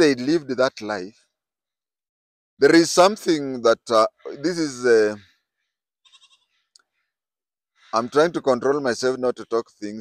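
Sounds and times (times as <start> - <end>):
man speaking: 0.0 - 1.1, 2.6 - 5.2, 8.0 - 10.0.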